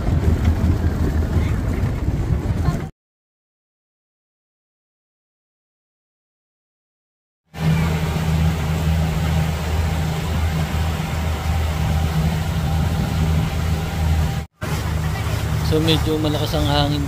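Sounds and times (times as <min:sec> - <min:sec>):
speedboat motor running: 0:00.0 - 0:02.9, 0:07.5 - 0:17.0
wind buffeting microphone: 0:00.0 - 0:02.9, 0:07.6 - 0:17.0
water rushing: 0:07.6 - 0:17.0.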